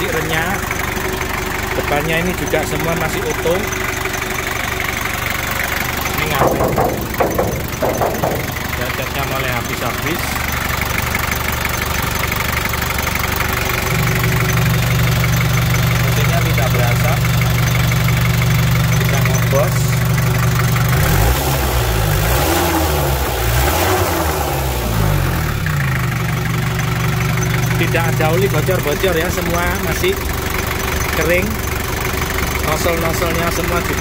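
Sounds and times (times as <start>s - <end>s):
diesel engine idling: 0.0s - 34.0s.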